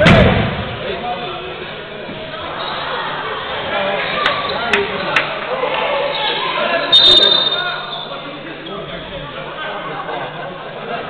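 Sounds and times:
spectators murmuring: 0.0s - 11.0s
referee's whistle blast: 6.9s - 8.2s.

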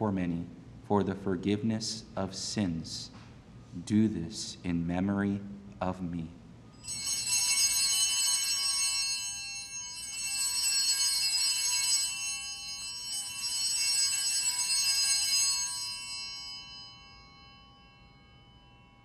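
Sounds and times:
small hand bells jangling: 6.8s - 19.0s.

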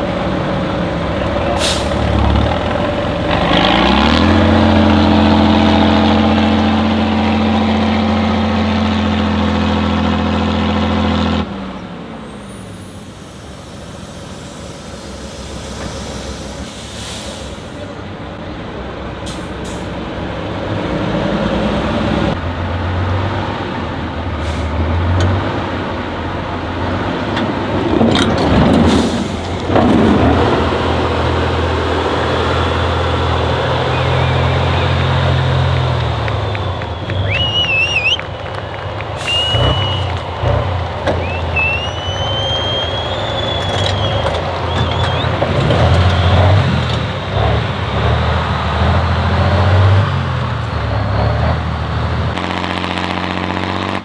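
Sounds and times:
diesel truck engines under load: 0.0s - 54.0s
high whistle rising in pitch: 36.4s - 38.3s, 39.2s - 40.2s, 41.1s - 45.3s
loud rushing bursts: 52.3s - 54.0s.

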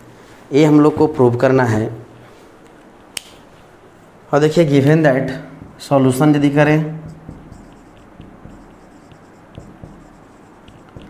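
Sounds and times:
marker writing on whiteboard: 5.6s - 11.0s.

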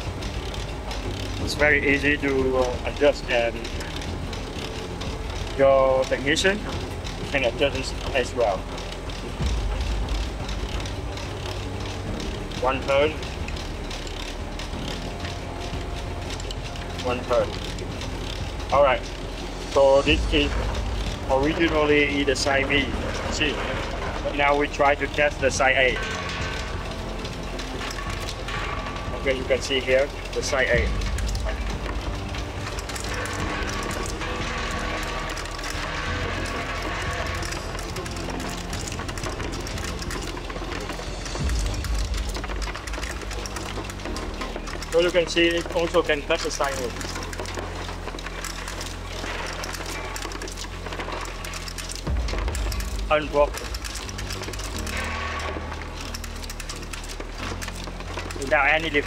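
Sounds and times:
background music: 0.0s - 59.0s
light machine clicking: 0.0s - 59.0s
machine humming: 0.0s - 59.0s.

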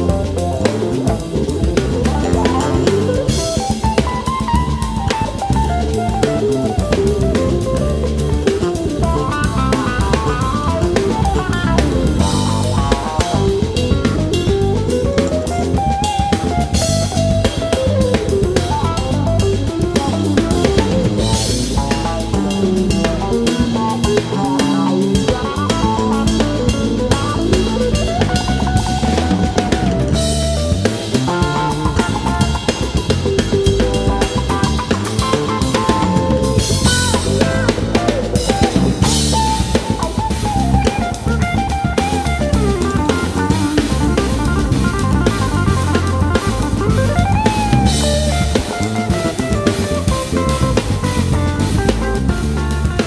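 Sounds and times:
bass: 0.0s - 53.0s
drum kit: 0.0s - 53.0s
electric guitar fast runs: 0.0s - 53.0s.

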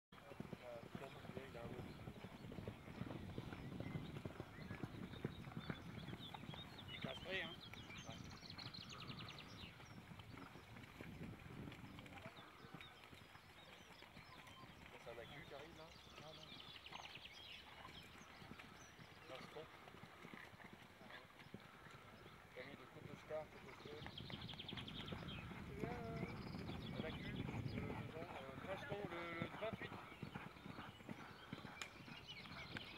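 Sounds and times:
horse hoofbeats on sand: 0.2s - 8.2s, 18.2s - 32.9s.

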